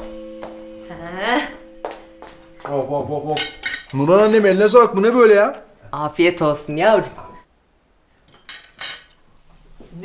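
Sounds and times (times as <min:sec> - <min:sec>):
plates and cutlery clinking: 0:03.2 - 0:04.6, 0:08.3 - 0:09.2.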